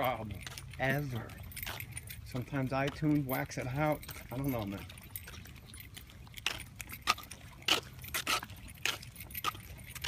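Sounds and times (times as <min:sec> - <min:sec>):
metallic jingling: 0:00.0 - 0:10.0.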